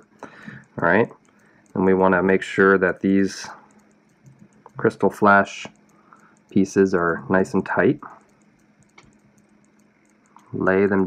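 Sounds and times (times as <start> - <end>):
faint low hum: 0.0 - 11.0
faint rapid high ticking: 0.0 - 11.0.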